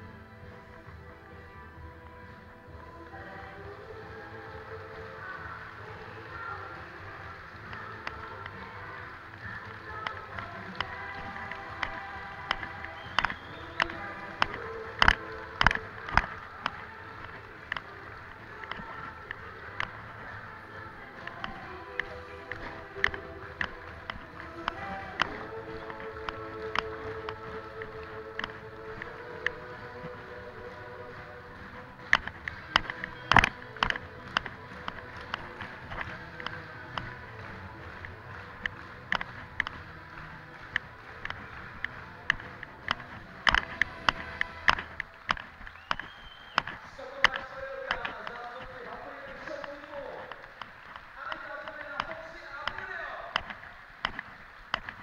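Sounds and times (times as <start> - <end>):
live music with sustained chords: 0.0 - 51.2
sharp clicks and knocks: 7.6 - 20.5, 21.1 - 30.4, 31.7 - 39.9, 40.5 - 48.8.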